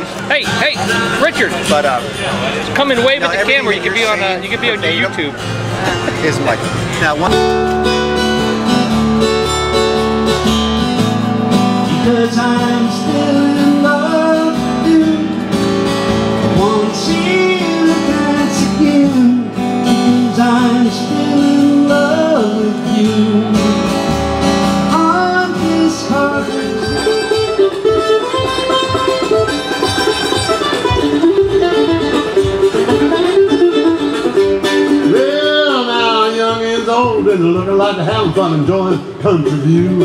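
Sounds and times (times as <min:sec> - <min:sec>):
mandolin picking: 0:00.0 - 0:19.0, 0:25.7 - 0:36.4
acoustic guitar: 0:00.0 - 0:40.0
man singing: 0:11.8 - 0:24.1, 0:24.8 - 0:27.6, 0:34.8 - 0:40.0.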